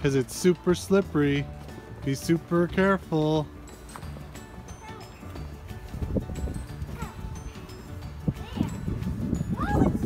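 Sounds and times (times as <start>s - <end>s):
child's wordless voice: 4.7s - 5.4s, 6.9s - 10.0s.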